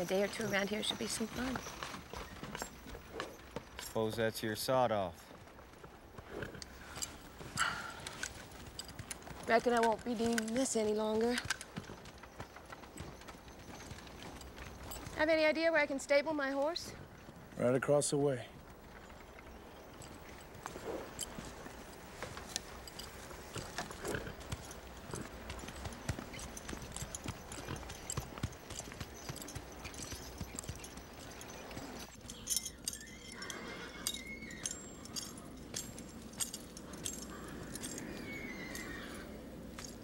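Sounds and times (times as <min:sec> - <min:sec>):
horse hooves clip-clopping on dirt: 0:00.0 - 0:40.0.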